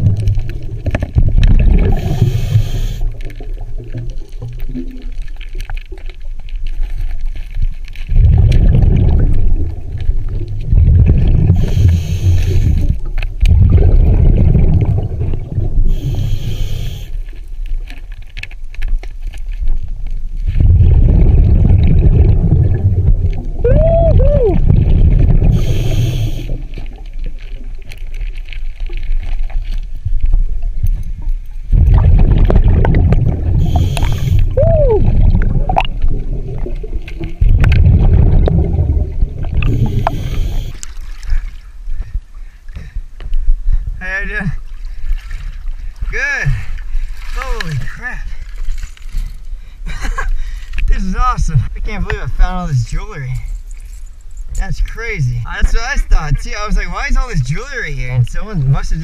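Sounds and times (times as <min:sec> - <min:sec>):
exhaled bubbles rumbling underwater: 0:00.0 - 0:18.4, 0:19.2 - 0:42.4
regulator inhalation hiss: 0:02.0 - 0:03.1, 0:11.6 - 0:12.9, 0:15.9 - 0:17.2, 0:25.6 - 0:26.6, 0:33.6 - 0:34.5, 0:39.7 - 0:40.8.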